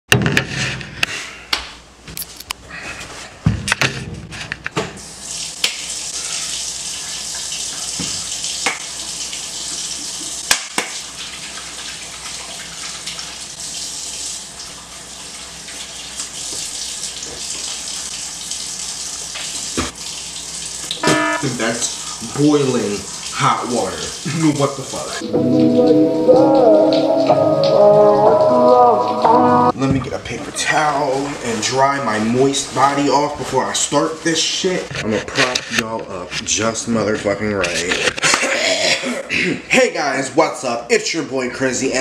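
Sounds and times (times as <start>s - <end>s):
faucet running into a sink: 11.1s - 25.2s.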